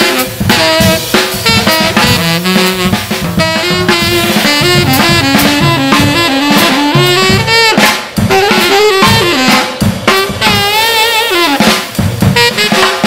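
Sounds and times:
drum kit: 0.0s - 13.0s
tenor saxophone melody: 0.0s - 13.0s.

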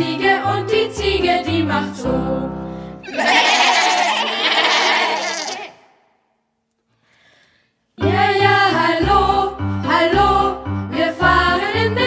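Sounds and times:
children calling out: 3.1s - 5.8s.

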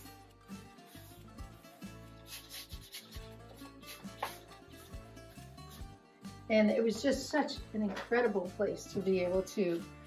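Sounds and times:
brush rubbing on canvas: 0.0s - 6.0s.

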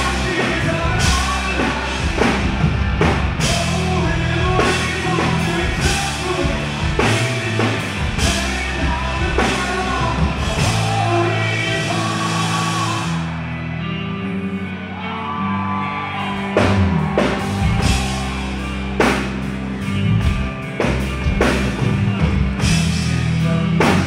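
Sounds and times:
hard rock band playing live: 0.0s - 24.0s.

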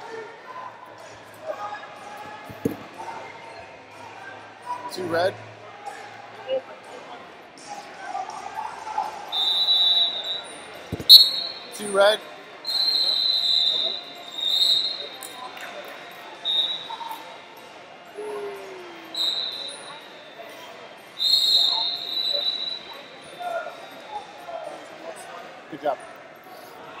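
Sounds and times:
hubbub of voices: 0.0s - 27.0s
referees' whistles blowing: 9.3s - 11.8s, 12.6s - 15.5s, 16.4s - 17.2s, 19.0s - 20.4s, 21.1s - 23.9s.

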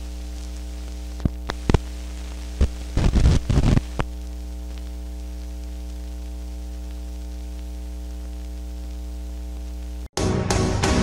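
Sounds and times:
crackles and pops: 0.0s - 10.1s
electrical hum: 0.0s - 10.1s
film soundtrack hiss: 0.0s - 10.1s.

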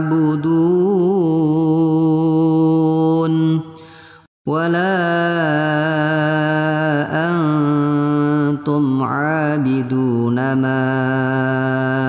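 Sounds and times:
person reciting in melodic chant: 0.0s - 12.0s.

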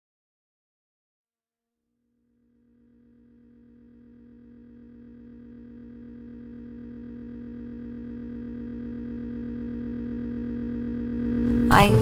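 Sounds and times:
electronic drone: 2.4s - 12.0s.

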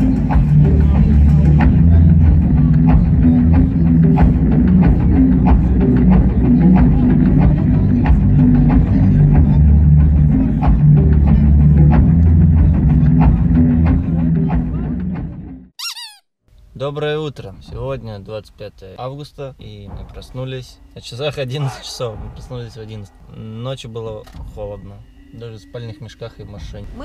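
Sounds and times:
festival stage sound: 0.0s - 14.7s
steady drum beat: 0.0s - 15.4s
short high wobbling squeak: 15.8s - 16.3s.

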